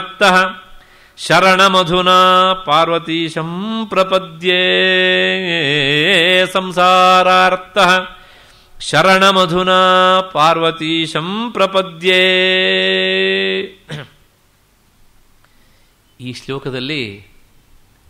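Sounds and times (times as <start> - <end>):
man chanting a verse: 1.2 - 8.1.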